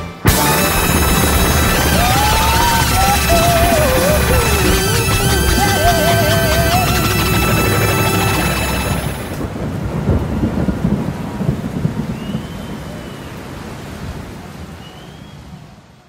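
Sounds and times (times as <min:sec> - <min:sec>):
live band chord: 0:00.0 - 0:09.5
crowd applauding and cheering: 0:00.1 - 0:09.5
whistles: 0:12.1 - 0:13.4, 0:14.8 - 0:15.6.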